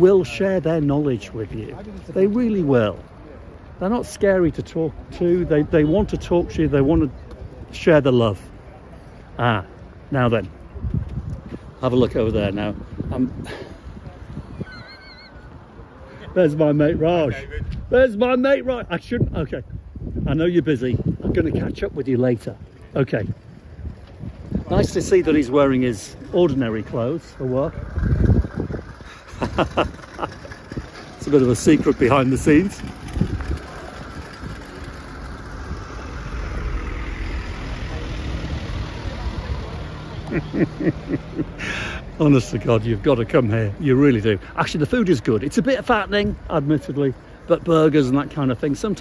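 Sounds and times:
wind rumbling on microphone: 9.9s - 16.0s, 16.7s - 41.7s
steady low rumble: 27.4s - 41.6s.

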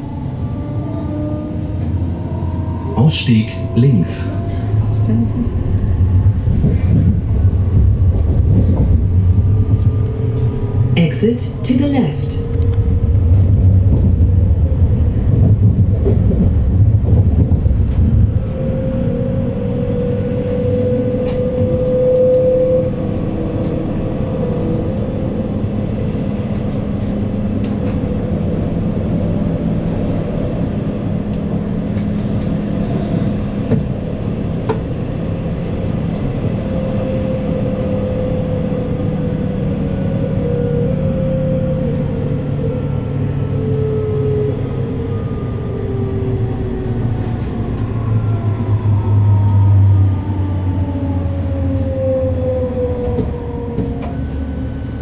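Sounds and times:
wheels rumbling on rail: 0.0s - 55.0s.

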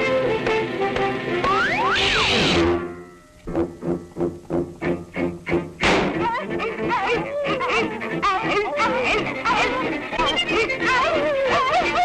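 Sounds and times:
music: 0.0s - 12.0s
cartoon hounds yelping and baying: 6.2s - 12.0s.

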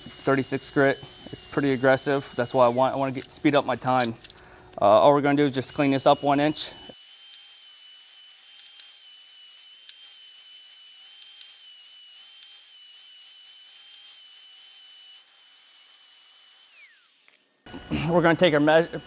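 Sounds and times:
angle grinder grinding steel: 0.0s - 4.0s, 5.6s - 19.0s.

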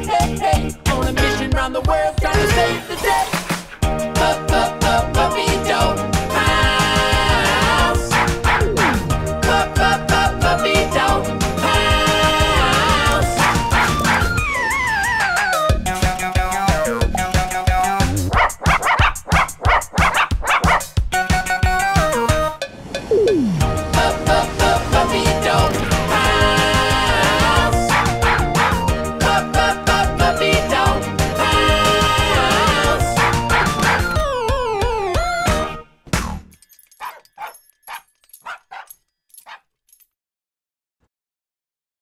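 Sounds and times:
upbeat theme tune: 0.0s - 36.6s
cartoon puppies barking and yipping: 2.4s - 21.0s, 24.7s - 35.8s, 37.0s - 39.6s
cartoon puppy barks: 8.1s - 9.1s, 13.4s - 14.3s, 18.2s - 20.9s, 27.8s - 28.8s, 33.2s - 34.2s, 37.0s - 39.6s.

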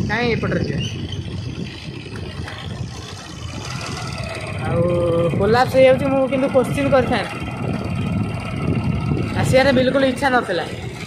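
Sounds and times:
motorcycle engine rumble: 0.0s - 11.0s
wind noise from riding: 0.0s - 11.0s.

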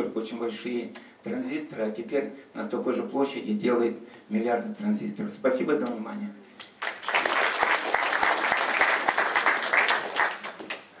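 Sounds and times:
audience applauding: 6.8s - 11.0s.

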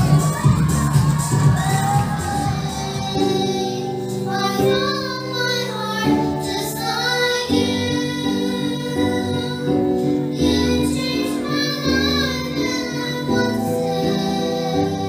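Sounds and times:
girls singing into microphones: 0.0s - 15.0s.

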